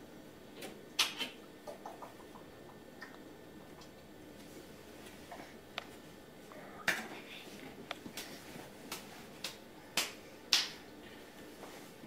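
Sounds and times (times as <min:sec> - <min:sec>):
sharp snapping clicks: 0:08.9 - 0:10.8.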